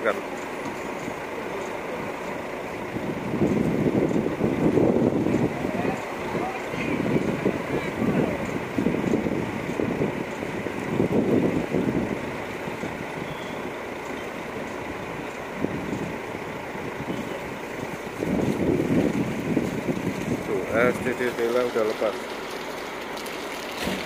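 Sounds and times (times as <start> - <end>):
people talking: 0.0 - 0.3, 5.4 - 8.6, 20.4 - 22.3
bus engines running: 0.0 - 24.0.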